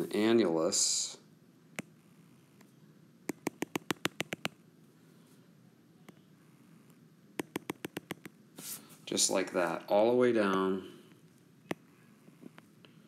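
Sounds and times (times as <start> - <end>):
stylus tapping on glass screen: 3.3 - 4.6, 7.4 - 8.4.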